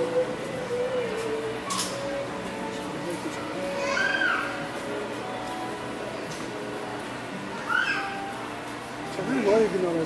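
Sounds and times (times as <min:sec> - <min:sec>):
steady background hum: 0:00.0 - 0:10.0
high-pitched cry: 0:03.7 - 0:04.6, 0:07.6 - 0:08.3.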